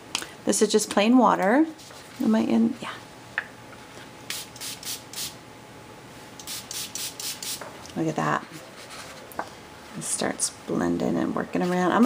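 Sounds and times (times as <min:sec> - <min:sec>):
spray bottle misting: 0:04.3 - 0:05.4, 0:06.4 - 0:07.6.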